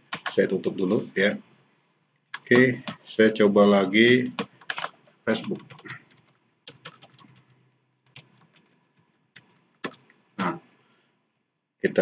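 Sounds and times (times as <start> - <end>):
keyboard keystrokes: 4.4 - 7.5, 8.1 - 10.0.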